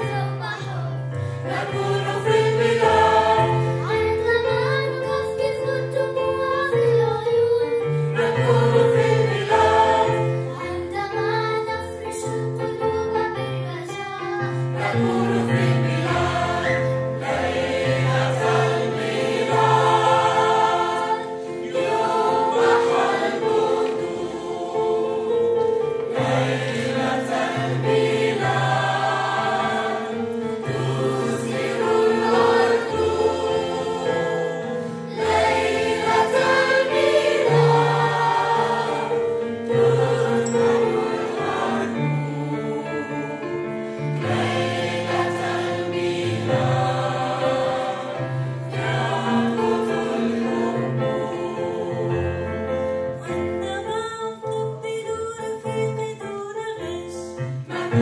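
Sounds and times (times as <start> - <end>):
mixed choir singing in harmony: 0.0 - 11.2, 13.9 - 53.6, 57.5 - 58.0.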